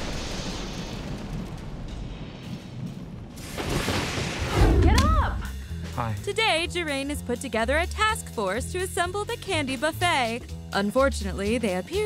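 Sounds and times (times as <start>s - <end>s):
low rumbling boom: 0.0s - 5.4s.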